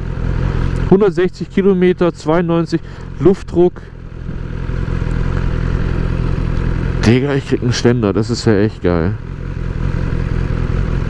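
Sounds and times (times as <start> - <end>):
motorcycle engine running: 0.0 - 11.0.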